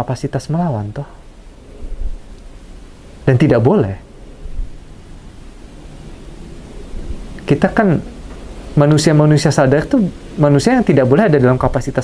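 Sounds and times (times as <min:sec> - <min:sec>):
faint hiss: 0:00.0 - 0:12.0
low background rumble: 0:00.0 - 0:12.0.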